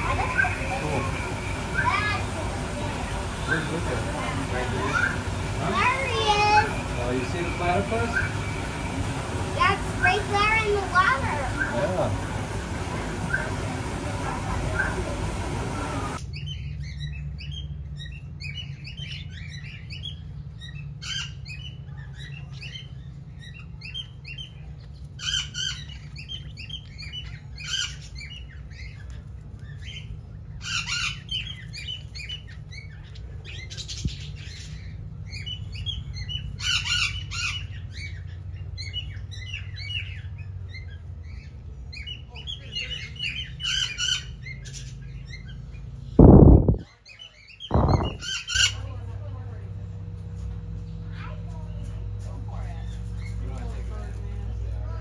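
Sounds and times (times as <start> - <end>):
flock of birds chirping: 0.0 - 55.0
steady low hum: 0.0 - 55.0
loud bumps: 47.7 - 48.3.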